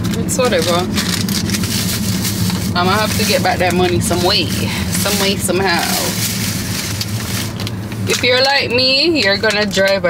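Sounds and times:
low engine hum: 0:00.0 - 0:10.0.

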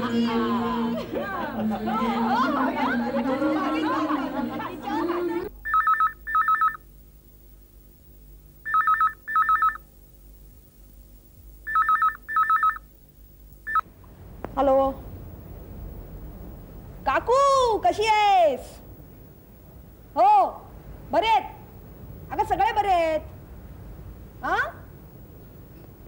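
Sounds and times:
people laughing: 0:00.0 - 0:05.5
people talking: 0:00.0 - 0:05.5, 0:14.5 - 0:15.1, 0:17.0 - 0:18.8, 0:20.2 - 0:21.7, 0:22.3 - 0:23.3, 0:24.4 - 0:24.9
telephone ringing two-tone: 0:05.6 - 0:06.8, 0:08.7 - 0:09.8, 0:11.7 - 0:12.8.

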